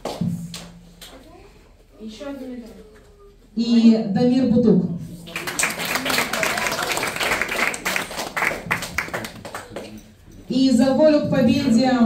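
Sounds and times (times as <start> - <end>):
children clapping: 5.3 - 10.0.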